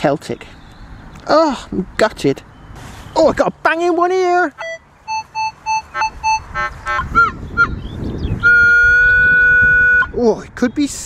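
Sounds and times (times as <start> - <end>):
metal detector beeps and tones: 4.6 - 7.4.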